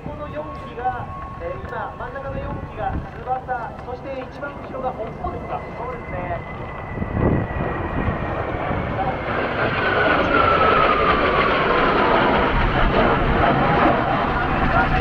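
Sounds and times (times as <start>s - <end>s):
jet engines roaring overhead: 0.0s - 15.0s
jet whine falling in pitch: 0.0s - 15.0s.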